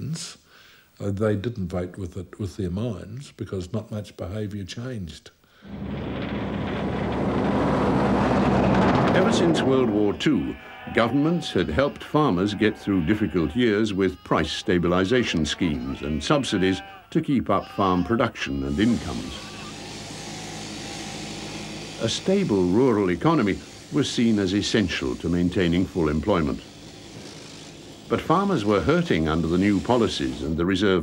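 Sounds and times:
truck engine drone: 0:05.6 - 0:10.6, 0:18.8 - 0:30.6
tyre noise: 0:05.7 - 0:13.4
shearing handpiece humming: 0:05.7 - 0:17.0, 0:17.7 - 0:30.8.

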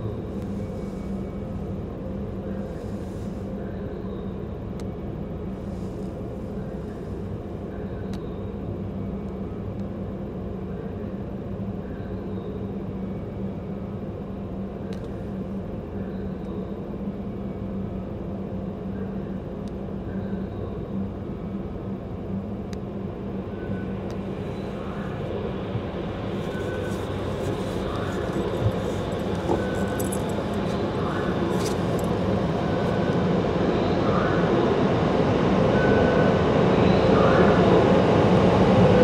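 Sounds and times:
car wash machinery humming: 0:23.1 - 0:35.9
car engine idling: 0:24.2 - 0:33.0.

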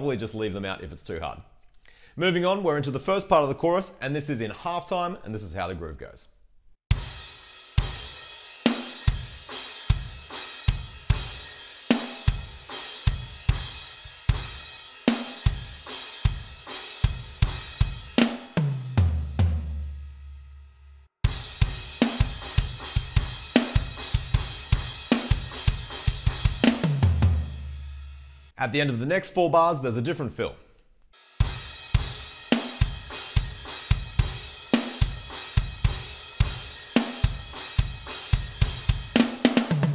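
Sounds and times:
electronic drum groove: 0:06.9 - 0:19.1, 0:21.2 - 0:27.9, 0:31.2 - 0:39.9.

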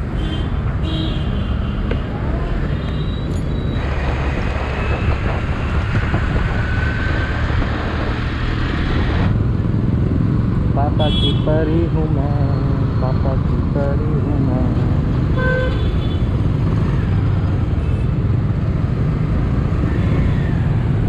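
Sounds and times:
wind and road noise: 0:00.0 - 0:21.0.

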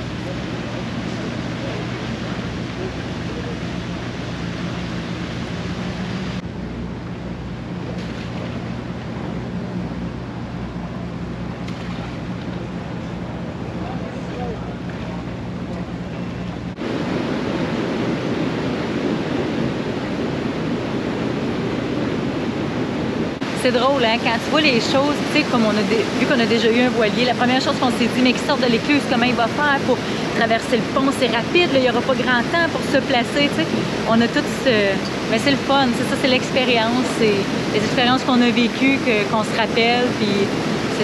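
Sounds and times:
low motor hum: 0:00.0 - 0:41.0
rushing churning water: 0:00.0 - 0:41.0
wind: 0:00.0 - 0:41.0.

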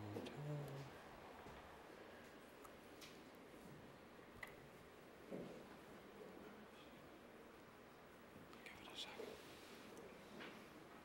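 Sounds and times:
whispered speech: 0:08.5 - 0:09.5.

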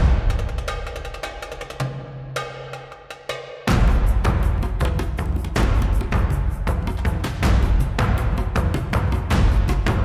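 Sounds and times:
background music: 0:00.0 - 0:10.0
percussion hits: 0:00.0 - 0:10.0.

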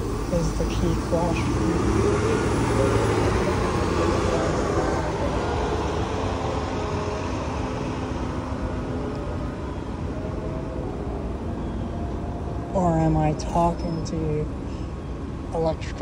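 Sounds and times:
road traffic rumble: 0:00.0 - 0:16.0
vehicle engine hum: 0:00.0 - 0:16.0.

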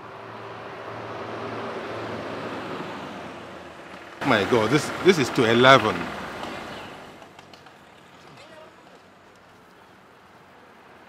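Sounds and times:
soft outdoor rush: 0:00.0 - 0:11.0.

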